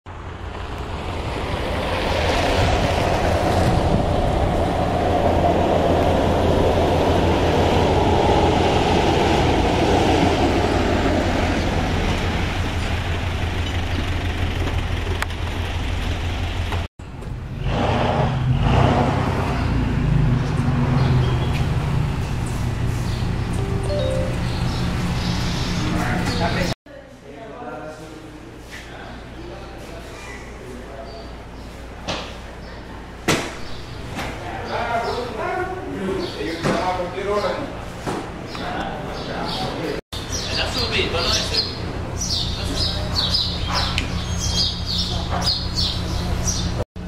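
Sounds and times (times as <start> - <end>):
car road and engine noise: 0.1 - 26.8, 40.2 - 46.8.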